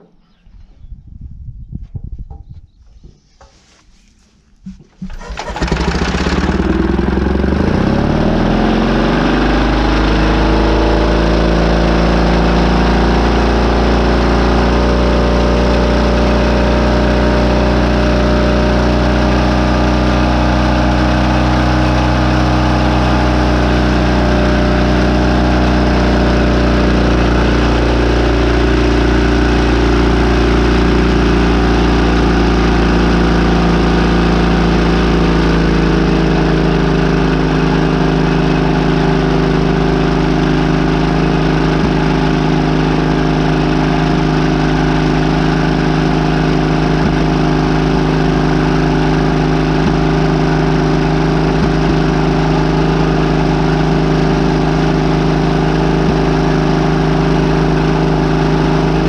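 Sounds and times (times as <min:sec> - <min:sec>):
small starting engine running: 0:05.1 - 0:59.0.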